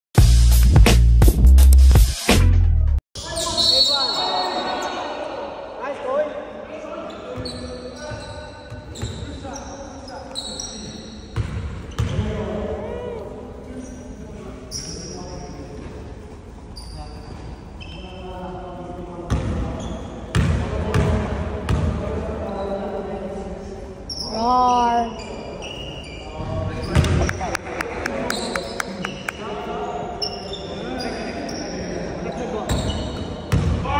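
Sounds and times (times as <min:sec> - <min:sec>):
sneakers squeaking on floor: 0:03.2 - 0:05.0, 0:06.9 - 0:12.5, 0:13.8 - 0:16.0, 0:16.7 - 0:18.4, 0:19.3 - 0:21.1, 0:24.1 - 0:27.5, 0:28.2 - 0:33.9
voices echoing in hall: 0:03.2 - 0:33.9
ball bouncing on hardwood court: 0:11.4 - 0:12.3, 0:26.8 - 0:27.3, 0:33.5 - 0:33.8.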